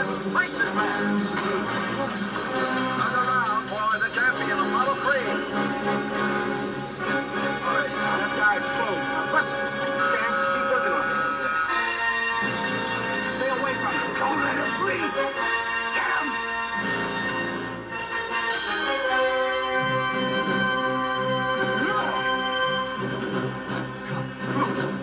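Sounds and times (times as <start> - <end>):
dramatic film music from television: 0.0 - 25.0
voices under music: 0.0 - 25.0.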